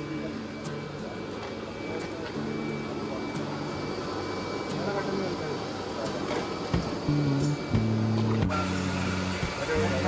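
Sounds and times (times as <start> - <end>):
air blower drone: 0.0 - 10.0.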